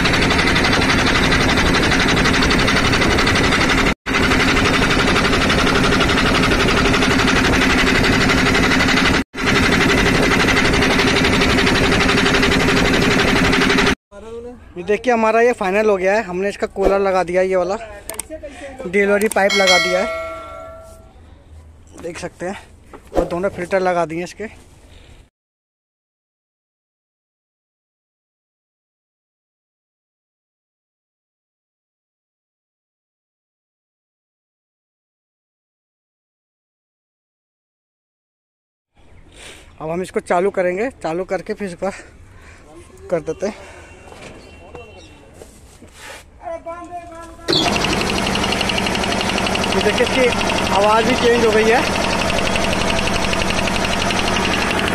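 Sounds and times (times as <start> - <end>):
piston air compressor running: 0.0 - 14.0, 47.5 - 54.9
struck metal ringing: 19.5 - 21.1.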